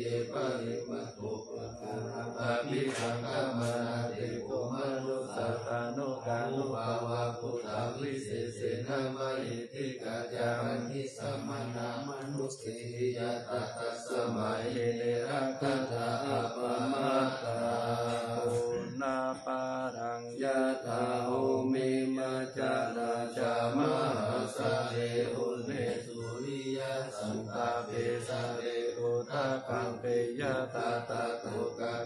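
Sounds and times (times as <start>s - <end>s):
group chanting in unison: 0.0s - 32.0s.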